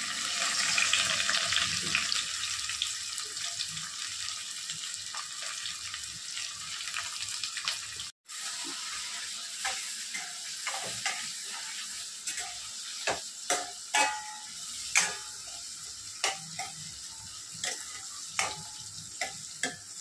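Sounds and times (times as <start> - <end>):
onions sizzling in hot oil: 0.0 - 20.0
steel spoon scraping a pan: 8.3 - 20.0.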